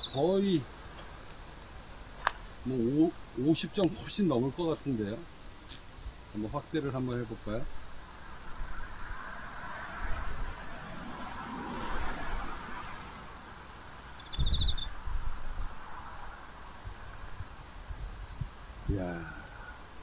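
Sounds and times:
insect chirping in rapid pulses: 0:00.0 - 0:20.0
steady hiss: 0:00.0 - 0:20.0.

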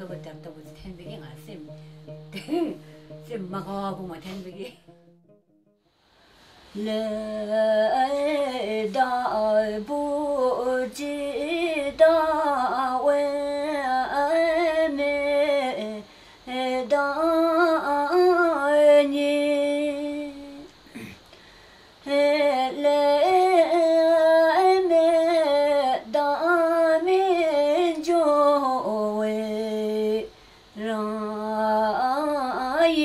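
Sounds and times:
woman singing alone: 0:00.0 - 0:05.0, 0:06.7 - 0:21.1, 0:22.0 - 0:33.0.

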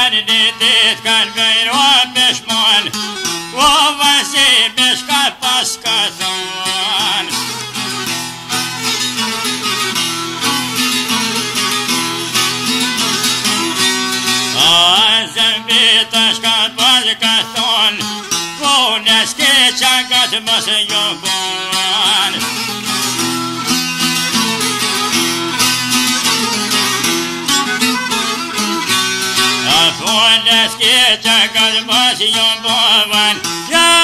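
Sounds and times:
plucked long-necked lute: 0:00.0 - 0:34.0
steady folk accompaniment: 0:00.0 - 0:34.0.

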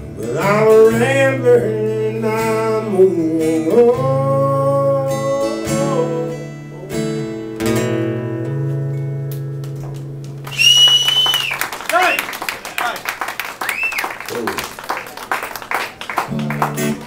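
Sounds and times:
acoustic guitar chord ringing: 0:00.4 - 0:10.2
audience clapping: 0:09.6 - 0:17.0
audience whistling: 0:10.4 - 0:16.8.

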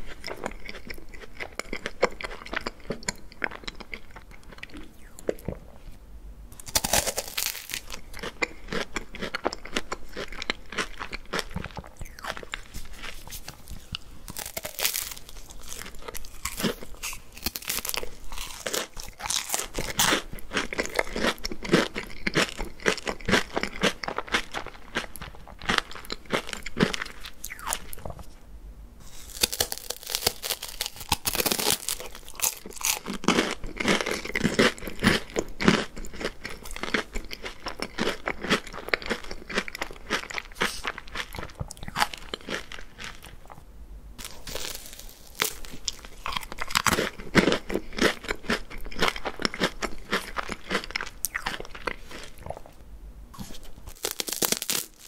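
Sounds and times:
crunching and chewing wafer cone: 0:00.0 - 0:05.8, 0:06.5 - 0:28.3, 0:29.0 - 0:52.8, 0:53.4 - 0:55.0.

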